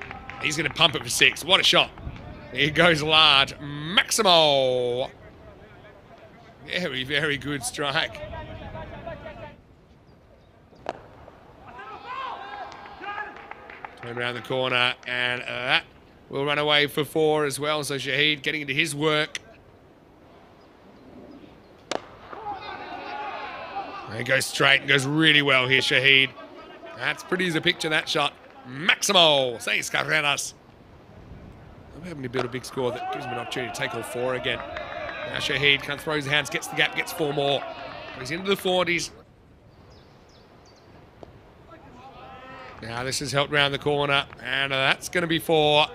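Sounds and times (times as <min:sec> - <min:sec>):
faint outdoor background: 0:00.0 - 0:45.9
cricket bat hitting ball: 0:21.9 - 0:22.6
bird chirps: 0:39.6 - 0:41.0.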